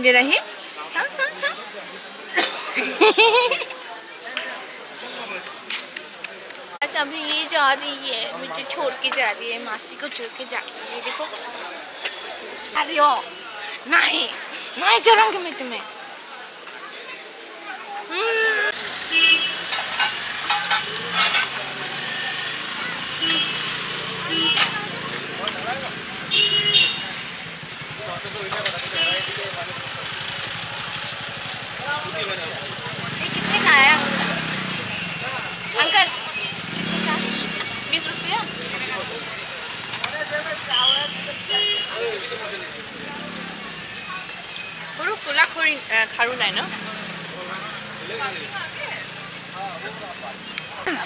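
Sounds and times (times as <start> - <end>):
voices talking: 0.0 - 51.0
low traffic rumble: 18.4 - 51.0
passing vehicles hum: 18.7 - 51.0
vehicle horn toot: 19.1 - 19.6, 23.2 - 23.7, 24.3 - 24.8, 26.3 - 27.2, 28.8 - 29.5, 40.6 - 42.2.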